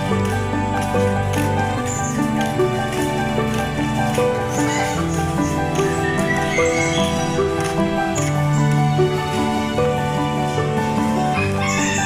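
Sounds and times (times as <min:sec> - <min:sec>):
background music of sustained notes: 0:00.0 - 0:12.0
rooster crowing: 0:11.4 - 0:12.0.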